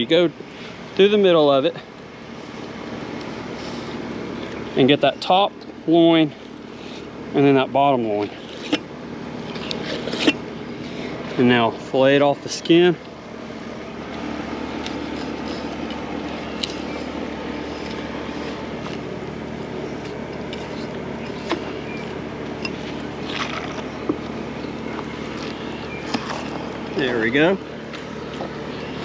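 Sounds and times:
motor humming: 0:01.7 - 0:29.0.

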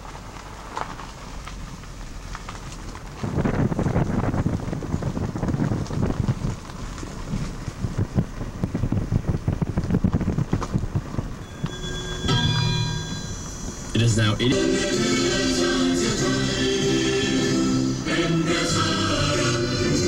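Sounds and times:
wind buffeting microphone: 0:02.9 - 0:11.5
steady tones: 0:11.4 - 0:20.0.

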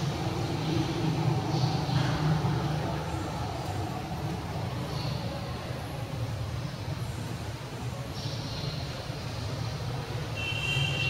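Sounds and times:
steady low rumble: 0:00.0 - 0:07.8.

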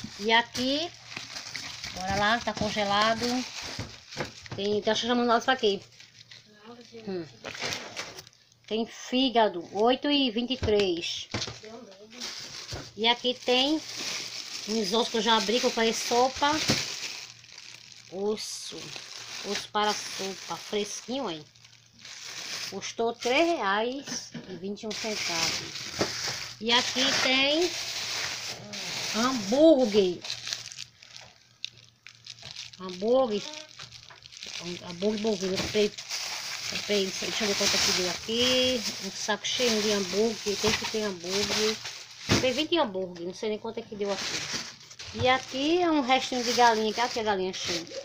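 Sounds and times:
plastic bag crinkling: 0:00.0 - 0:09.3, 0:10.8 - 0:24.0, 0:24.8 - 0:42.8, 0:44.0 - 0:48.0.

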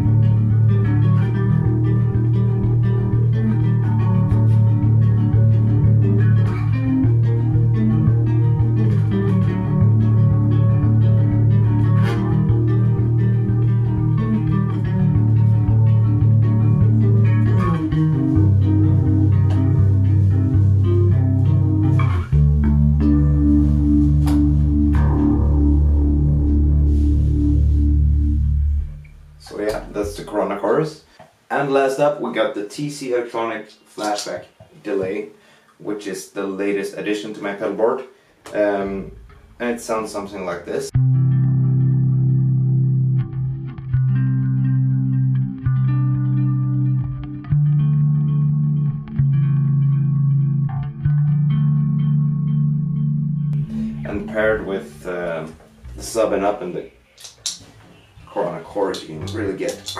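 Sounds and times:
electric bass riff with chorus: 0:00.0 - 0:30.5, 0:38.5 - 0:59.9.

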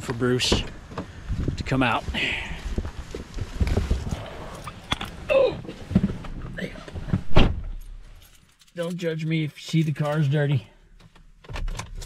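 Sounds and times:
footsteps with low thumps: 0:02.6 - 0:04.5.

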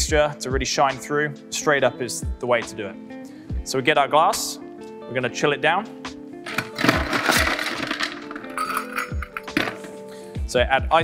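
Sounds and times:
background music: 0:00.0 - 0:11.0
ice cubes clattering into glass: 0:06.5 - 0:10.0.

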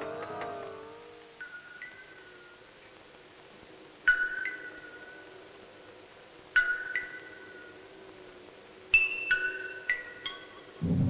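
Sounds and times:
low drone: 0:10.8 - 0:11.0.

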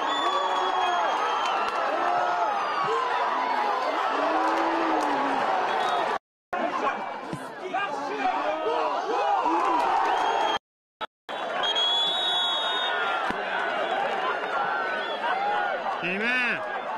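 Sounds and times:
referee's whistle: 0:00.0 - 0:01.7, 0:10.1 - 0:10.6, 0:11.6 - 0:13.1
stadium crowd shouting: 0:00.0 - 0:10.6, 0:11.3 - 0:16.9.

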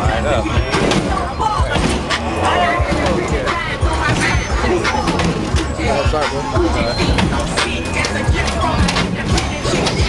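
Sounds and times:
crowd chatter: 0:00.0 - 0:10.0
music: 0:00.0 - 0:10.0.

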